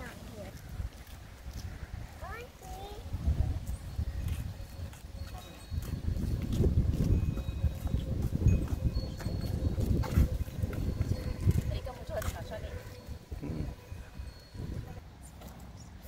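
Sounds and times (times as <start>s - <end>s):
wind buffeting microphone: 0.0s - 15.2s.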